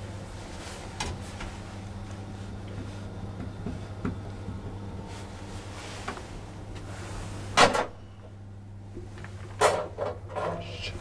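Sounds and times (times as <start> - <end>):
elevator low hum: 0.0 - 11.0.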